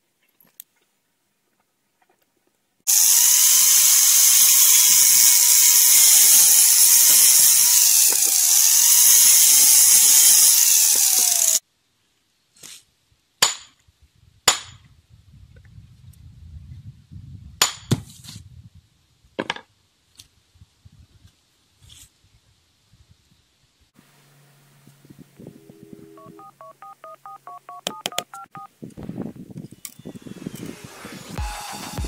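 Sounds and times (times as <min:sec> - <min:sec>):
angle grinder cutting brick: 0:02.9 - 0:11.6, 0:29.8 - 0:32.0.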